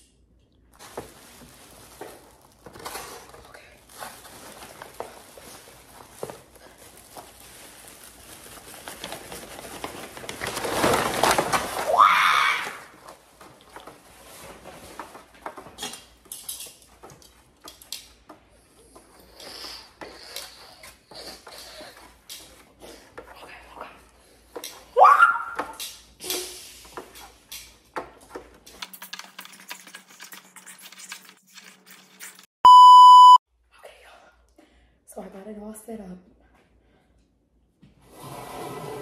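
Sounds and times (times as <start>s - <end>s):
electronic bleep tone: 32.7s - 33.4s.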